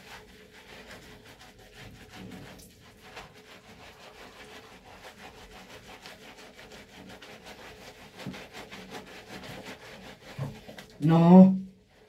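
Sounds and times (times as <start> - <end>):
sponge scrubbing wet fur: 0.0 - 12.0.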